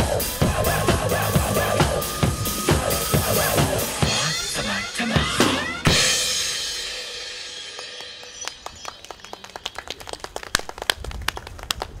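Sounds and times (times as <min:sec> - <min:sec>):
cymbals ringing: 0:00.2 - 0:09.3
hand clapping: 0:07.7 - 0:12.0.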